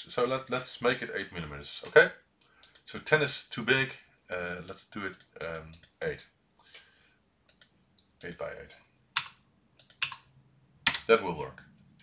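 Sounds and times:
computer keyboard keystrokes: 9.2 - 10.3.

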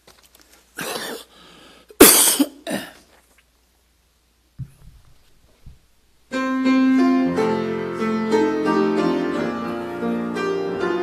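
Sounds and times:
person coughing: 0.8 - 3.2.

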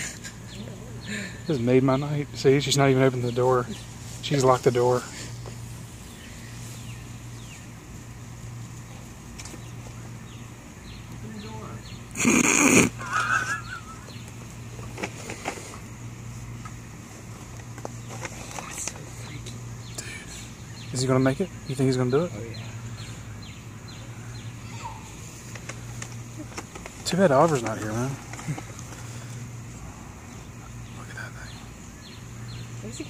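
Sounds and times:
faint outdoor background: 0.0 - 33.0
steady low hum: 0.0 - 33.0.

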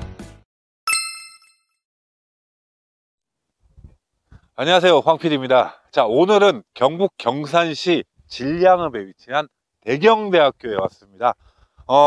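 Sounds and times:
bright ding sound effect: 0.9 - 1.8.

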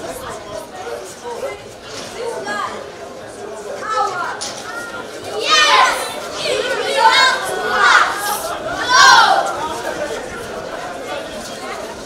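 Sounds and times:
children shouting: 3.8 - 11.9.

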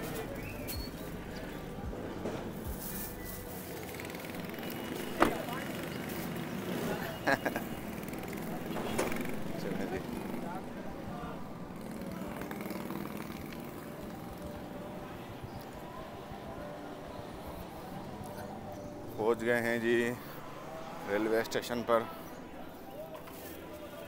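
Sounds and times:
faint voices: 0.0 - 24.0
traffic: 0.0 - 24.0.

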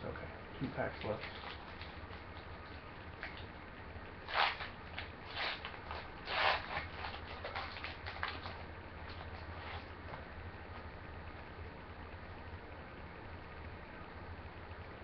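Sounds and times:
foil wrapper tearing and crinkling: 4.3 - 9.9
cards rustling: 4.3 - 10.2.

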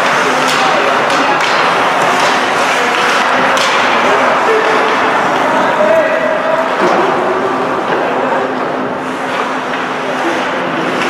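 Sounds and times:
crowd din and shouting: 0.0 - 11.0.

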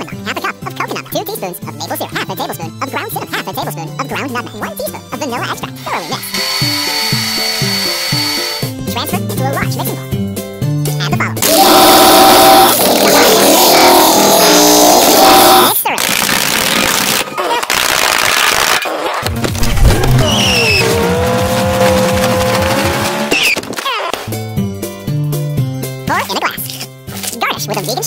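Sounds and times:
sped-up music: 3.5 - 11.0
car engine running: 19.3 - 23.4
tire squeal: 19.8 - 23.6.

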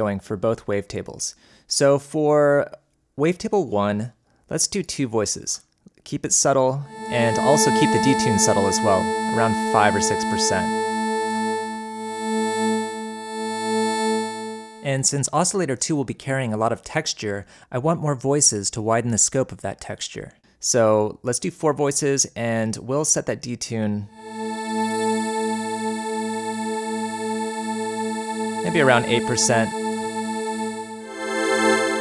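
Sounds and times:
sustained synth pad: 6.9 - 14.9, 24.2 - 32.0.

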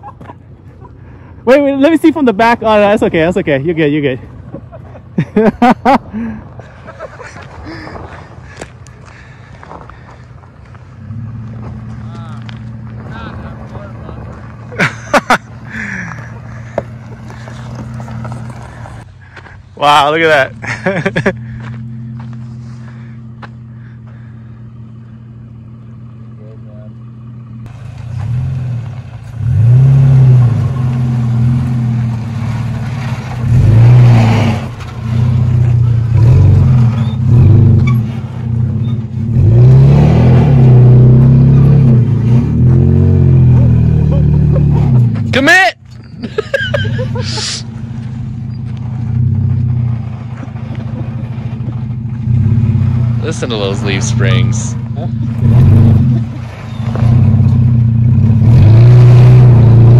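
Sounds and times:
truck engine revving: 7.3 - 19.1, 20.1 - 59.9.

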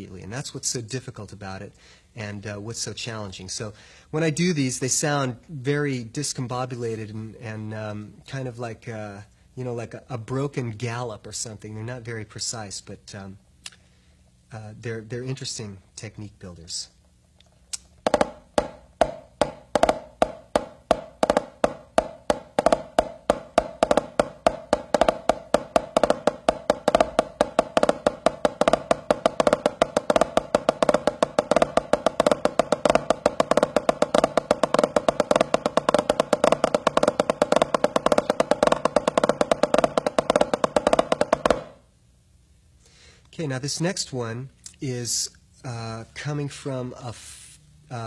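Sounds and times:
drumsticks playing drum rudiment: 17.7 - 41.8.

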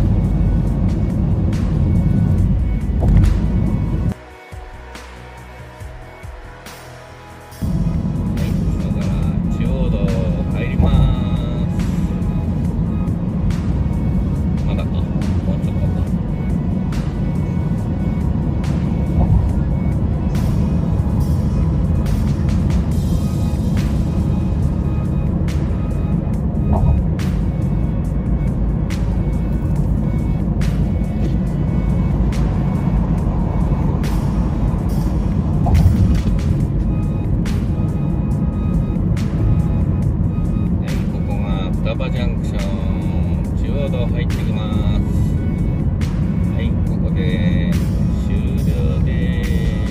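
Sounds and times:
road and tyre rumble inside car: 0.0 - 4.2, 7.6 - 49.9
music playing: 0.0 - 49.9.

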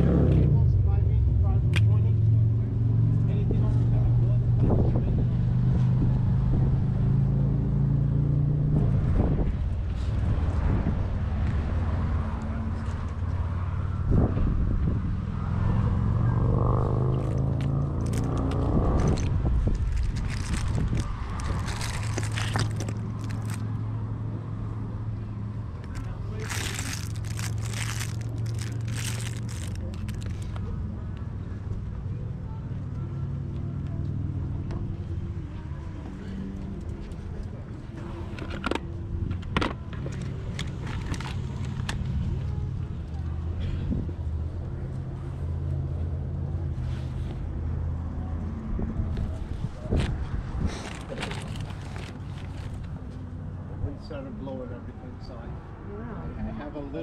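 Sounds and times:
vehicle engine humming: 0.0 - 56.2
plastic toys rummaged in box: 18.0 - 23.6, 25.8 - 30.6, 50.8 - 52.8.

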